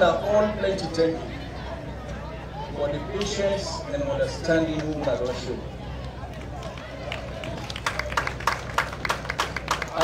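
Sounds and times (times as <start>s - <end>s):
faint crowd voices: 0.0s - 10.0s
hand claps: 6.7s - 10.0s.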